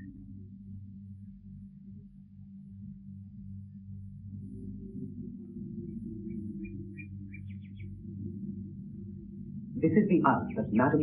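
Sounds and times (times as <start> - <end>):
steady low hum: 0.0 - 11.0
bird chirping: 6.2 - 8.0.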